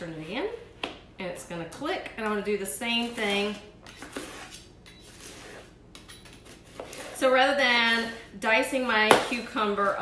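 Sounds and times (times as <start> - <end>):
knife scraping through plastic bowl: 3.0 - 5.8, 6.4 - 7.3.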